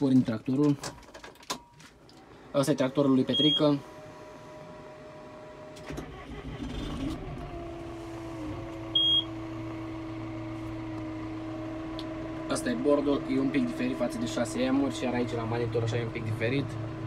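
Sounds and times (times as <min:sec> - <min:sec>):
tractor engine starting and idling: 0:05.6 - 0:10.8
short high beep: 0:09.0 - 0:09.3.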